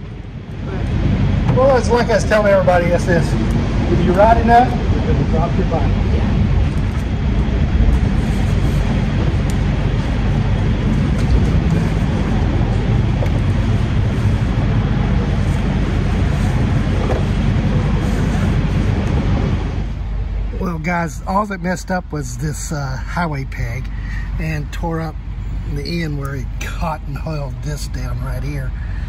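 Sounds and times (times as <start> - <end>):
low rumble: 0.0 - 29.0.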